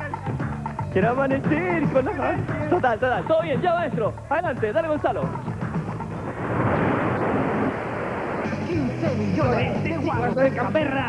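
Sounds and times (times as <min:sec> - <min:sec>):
rushing rumbling transition effect: 0:06.1 - 0:09.7.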